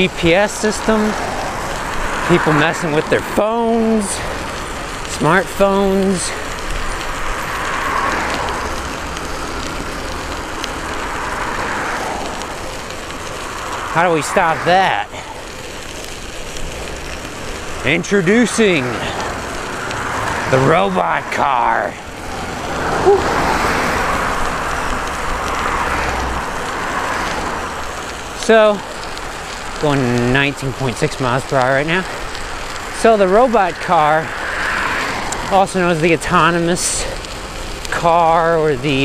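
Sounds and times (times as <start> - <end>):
car passing: 0.0 - 39.0
studded bicycle tyres on wet pavement: 0.0 - 39.0
person voicing woo: 23.0 - 23.4.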